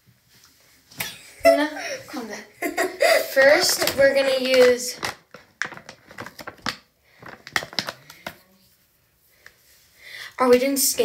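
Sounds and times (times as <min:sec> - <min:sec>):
hands clicking and tapping small objects: 0:03.5 - 0:08.5.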